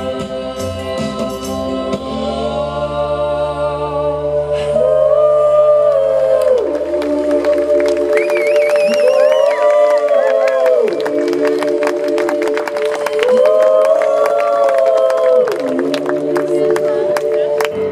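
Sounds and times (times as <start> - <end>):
two women singing in harmony: 0.0 - 17.9
crowd cheering and clapping: 4.9 - 17.9.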